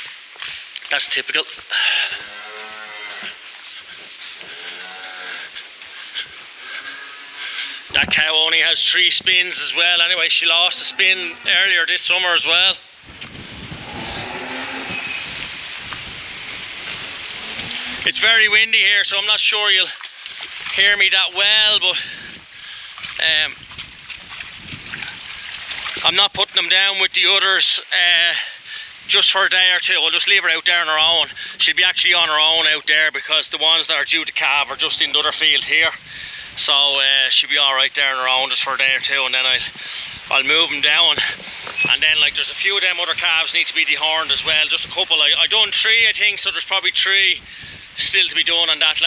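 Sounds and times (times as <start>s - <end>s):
cattle mooing: 1.8s - 3.4s, 4.4s - 8.0s, 10.3s - 11.8s, 13.7s - 15.5s, 17.3s - 18.6s
wind buffeting microphone: 7.8s - 12.4s, 13.0s - 18.6s, 21.9s - 26.4s, 34.7s - 37.0s, 39.5s - 49.0s
splashing steps through water: 19.6s - 21.4s, 22.0s - 26.4s.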